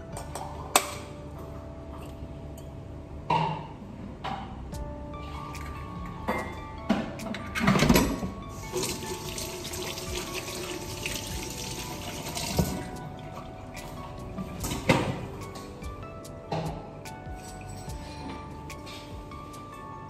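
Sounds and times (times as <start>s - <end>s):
background music: 0.0s - 20.0s
kitchen tap running: 8.5s - 13.0s.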